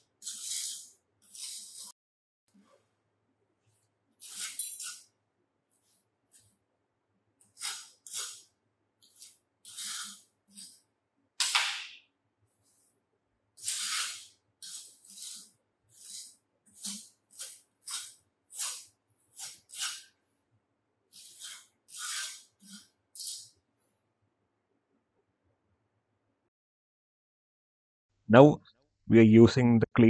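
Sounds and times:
trowel scraping sand: 0.0s - 2.0s, 4.2s - 5.1s, 7.4s - 10.8s, 13.6s - 20.2s, 21.1s - 23.6s.

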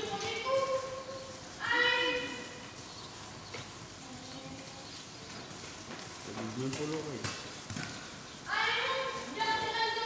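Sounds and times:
ponies walking on sand: 0.0s - 10.0s.

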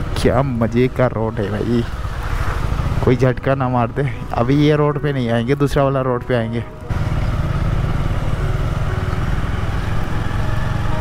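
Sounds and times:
motorcycle engine running: 0.0s - 5.3s, 6.1s - 11.0s.

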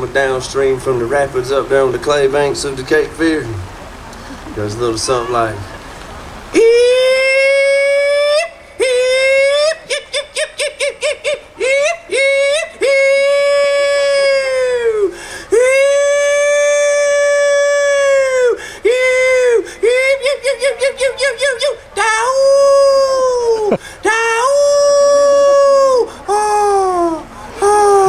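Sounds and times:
man hollering into a microphone: 4.5s - 5.7s, 6.5s - 28.0s.

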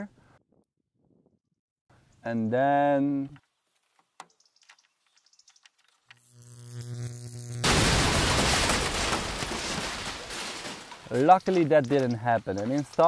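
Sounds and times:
buzzing electrical hum: 5.8s - 10.3s
loud explosion: 7.6s - 10.1s.

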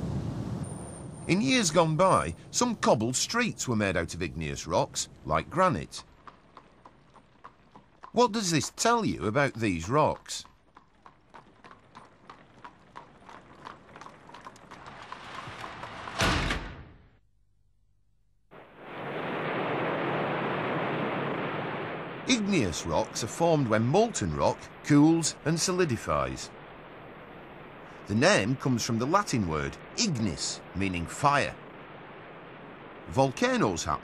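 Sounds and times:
hooves clip-clopping on cobblestones: 5.9s - 16.2s
lava fountain rushing: 18.7s - 34.0s.

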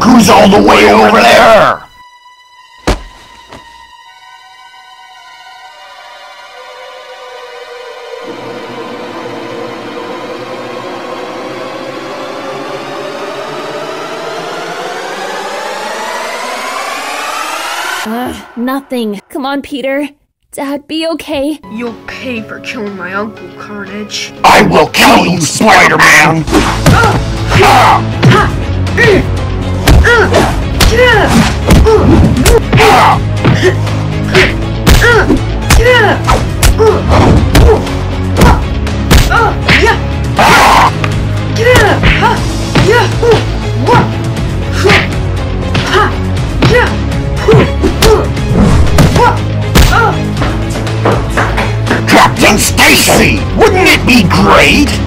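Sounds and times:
action music: 0.0s - 19.6s, 21.7s - 55.0s
punch and hit thuds: 2.8s - 3.2s, 26.5s - 28.5s, 29.8s - 33.6s, 34.4s - 37.8s, 38.4s - 40.6s, 47.5s - 52.1s
rushing drone rising in pitch: 6.6s - 19.0s.

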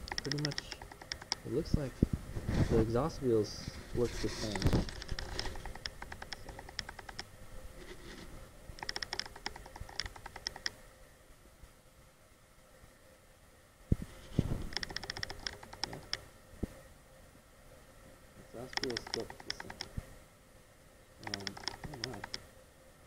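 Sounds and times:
metal parts clicking and rattling: 4.3s - 7.2s.

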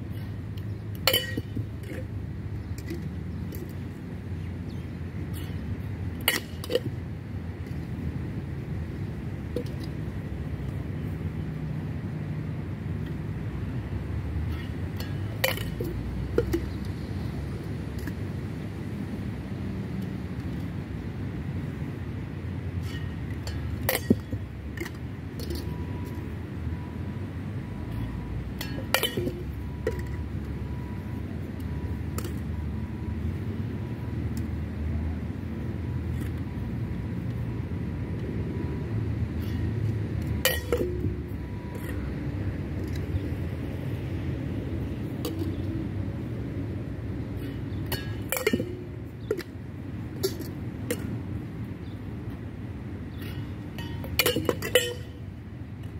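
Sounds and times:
metallic tin and bottle clinks: 1.1s - 2.0s, 47.9s - 49.4s, 53.2s - 55.2s.

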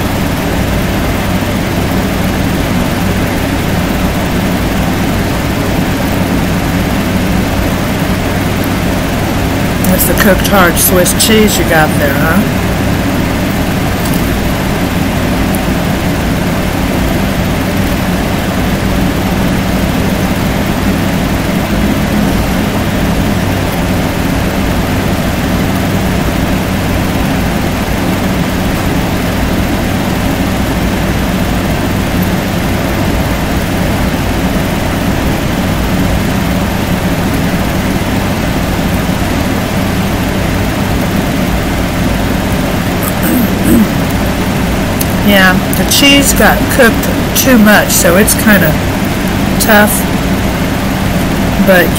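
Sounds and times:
machine hum: 0.0s - 51.9s.

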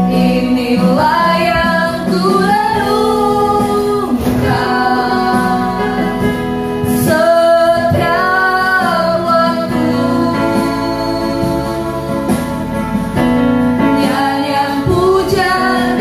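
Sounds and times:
electric keyboard: 0.0s - 16.0s
woman singing worship song: 0.0s - 16.0s.

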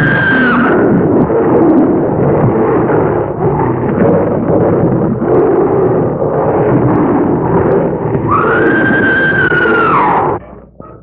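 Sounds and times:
animal roaring: 0.0s - 11.0s.

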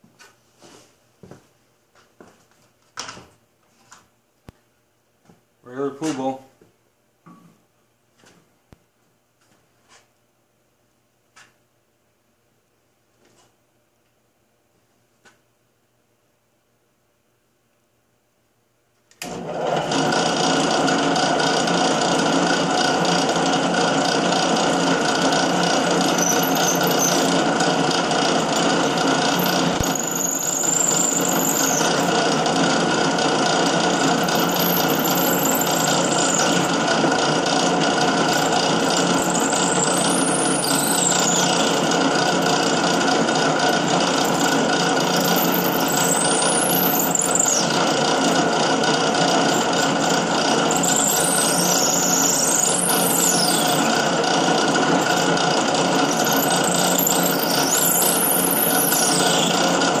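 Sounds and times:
drill press running: 19.2s - 60.0s
high squeal from cutting: 25.6s - 32.2s, 34.0s - 36.9s, 38.2s - 42.6s, 44.2s - 48.3s, 49.3s - 60.0s.

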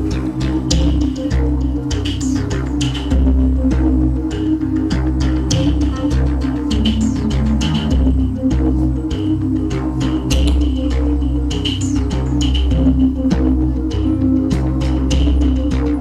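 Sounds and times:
synth and bass notes: 0.0s - 16.0s
drum beat: 5.2s - 8.6s.

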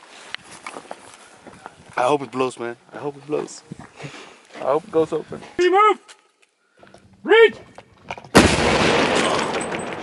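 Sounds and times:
explosive blast: 8.3s - 10.0s.

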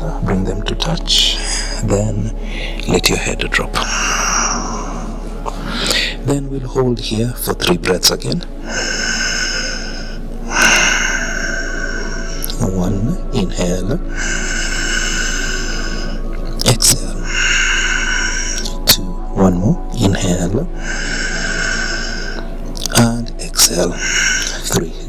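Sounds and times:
man breathing slowly: 1.4s - 2.9s, 3.8s - 6.3s, 8.5s - 12.6s, 14.0s - 16.6s, 17.2s - 19.3s, 20.7s - 22.9s, 23.9s - 25.0s
person breathing out: 8.7s - 12.5s.

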